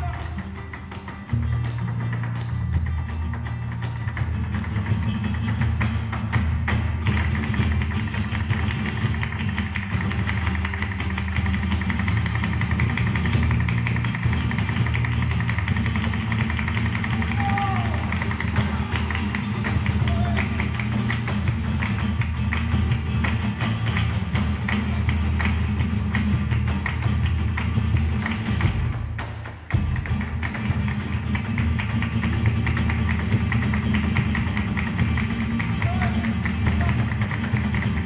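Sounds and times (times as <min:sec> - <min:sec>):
flamenco guitars playing: 0:00.0 - 0:38.0
footwork on wooden stage: 0:00.0 - 0:38.0
hand-clapping: 0:00.0 - 0:38.0.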